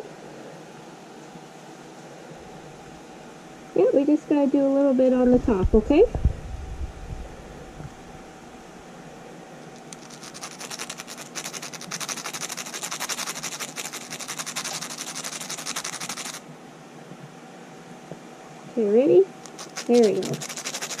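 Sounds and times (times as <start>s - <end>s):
nail file rasping on teeth: 9.8s - 16.4s, 19.4s - 21.0s.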